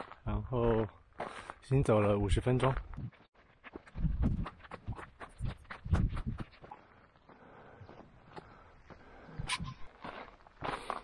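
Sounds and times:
footsteps crunching on rocky trail: 0.0s - 11.0s.

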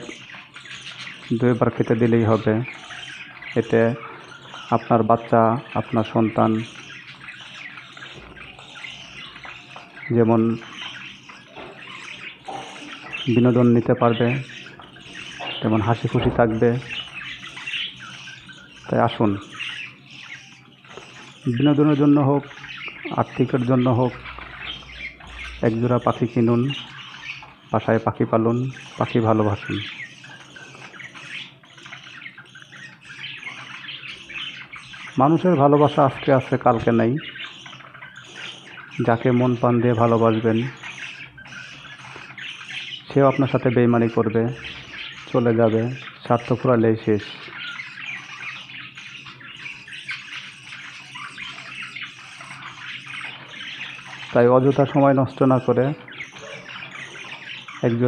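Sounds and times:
budgerigars chirping: 0.0s - 58.0s.

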